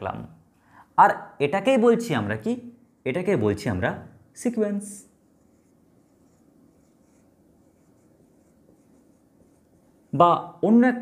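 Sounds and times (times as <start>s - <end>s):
marker pen scratching on whiteboard: 5.2s - 10.2s.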